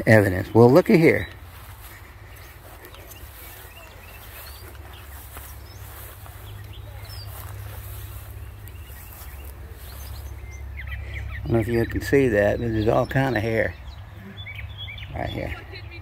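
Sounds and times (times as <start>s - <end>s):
faint bird chirps: 1.1s - 16.0s
steady low rumble: 1.2s - 16.0s.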